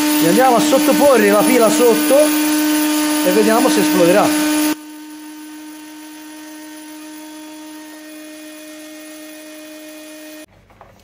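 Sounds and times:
heat gun blowing: 0.0s - 10.5s.

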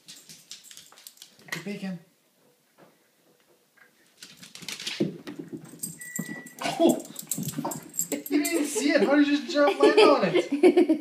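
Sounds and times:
dog paws pattering: 0.0s - 1.9s, 4.0s - 9.4s.

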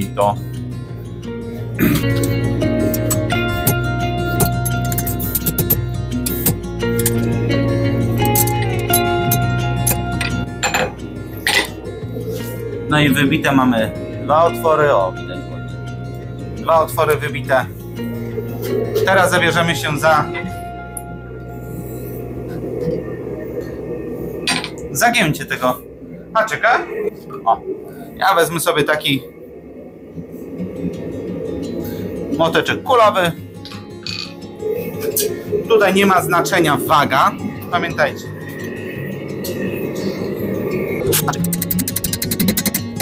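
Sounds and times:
guitar music: 0.0s - 25.0s, 29.4s - 43.0s
faint hum: 5.1s - 42.0s
low rumble: 10.4s - 41.8s.

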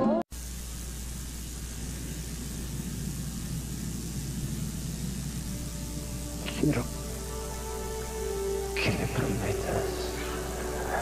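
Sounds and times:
low hum: 0.0s - 11.0s
steady hiss: 0.3s - 11.0s
music: 5.0s - 11.0s.

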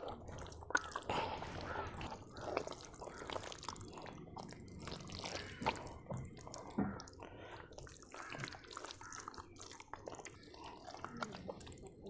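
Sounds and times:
hands squelching through mud: 0.0s - 12.0s
water splashes and drips: 0.0s - 12.0s.

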